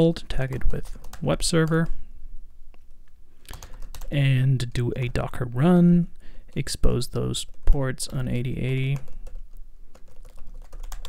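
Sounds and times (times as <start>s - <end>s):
computer keyboard typing: 0.4s - 1.8s, 3.5s - 4.1s, 8.1s - 11.0s.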